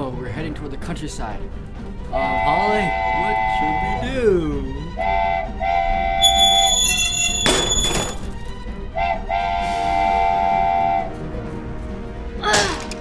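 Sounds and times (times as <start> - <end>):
train horn blasts: 2.1 - 4.2, 4.9 - 7.8, 8.9 - 11.4.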